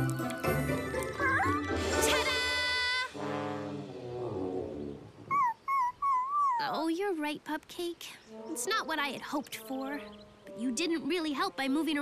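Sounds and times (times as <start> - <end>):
cartoon puppy whimpering: 5.3 - 6.8.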